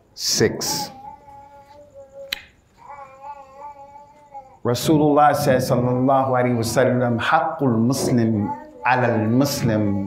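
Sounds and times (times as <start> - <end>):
sharp click: 2.3 - 2.6.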